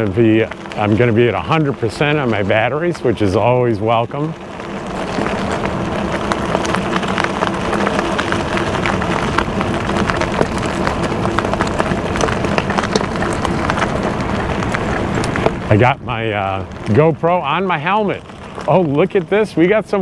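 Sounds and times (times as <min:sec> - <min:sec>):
bike tyres crunching on gravel: 0:00.0 - 0:20.0.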